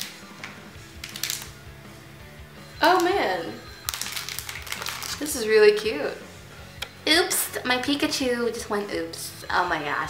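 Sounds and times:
quiet background music: 0.0s - 10.0s
plastic packaging crinkling: 1.0s - 1.6s, 3.8s - 5.3s.

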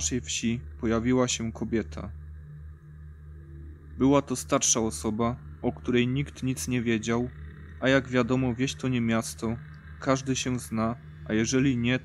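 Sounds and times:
faint higher tone: 0.0s - 12.0s
low droning tone: 0.0s - 12.0s.

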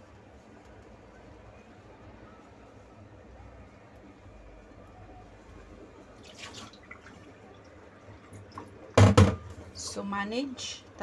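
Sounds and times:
water dripping: 6.2s - 9.0s.

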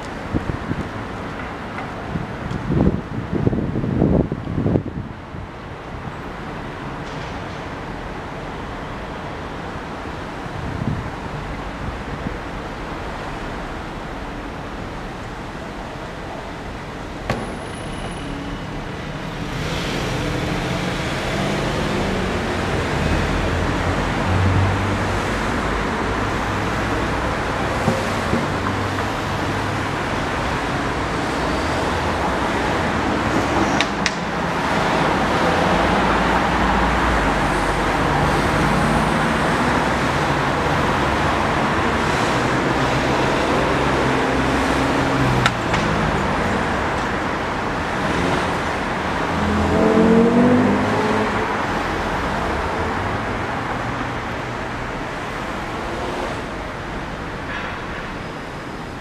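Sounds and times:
vehicles passing: 0.0s - 59.0s.

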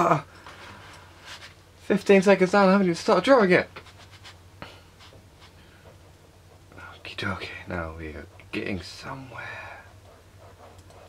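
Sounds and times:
pen scratching on paper: 9.9s - 11.0s.

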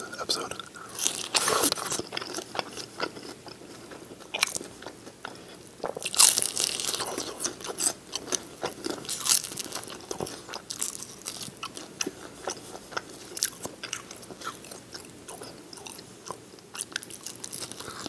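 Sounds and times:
crunchy chewing of fried chicken: 0.0s - 18.0s.

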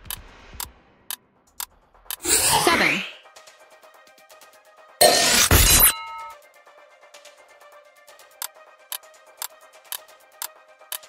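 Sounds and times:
faint background music: 0.8s - 11.0s.

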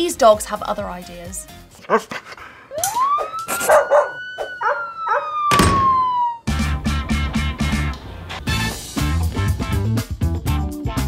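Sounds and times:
dog howling: 2.7s - 6.5s.

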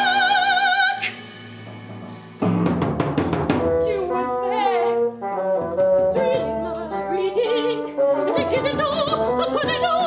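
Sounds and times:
operatic woman singing: 0.0s - 1.2s, 6.0s - 10.0s
sustained instrumental accompaniment: 1.2s - 10.0s.

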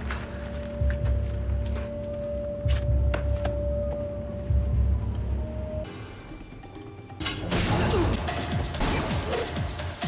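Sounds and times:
loud action music: 7.2s - 10.0s.

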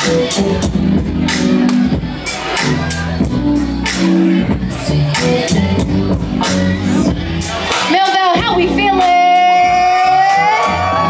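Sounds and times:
backing track with bass line: 0.0s - 11.0s.

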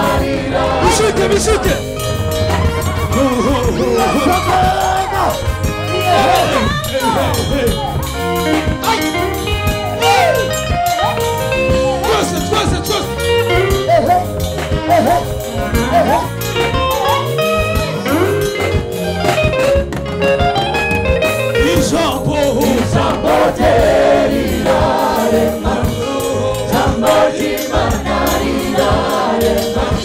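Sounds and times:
gospel choir singing: 0.0s - 17.4s, 21.6s - 30.0s
drum kit beat: 0.0s - 30.0s
electric bass guitar: 0.0s - 30.0s.

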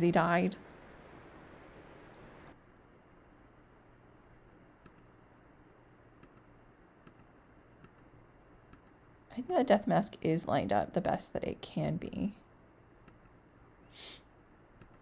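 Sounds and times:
faint computer mouse clicks: 6.2s - 8.1s.

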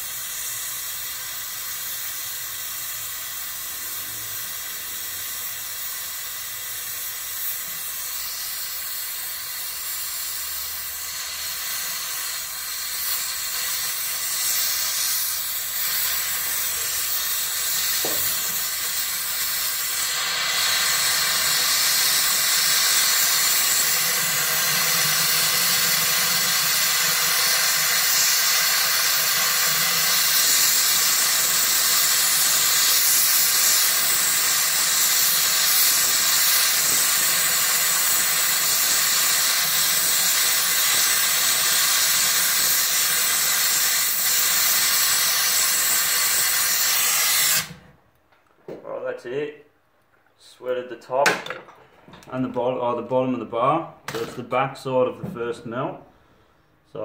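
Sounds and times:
gas torch flame hissing: 0.0s - 48.0s.

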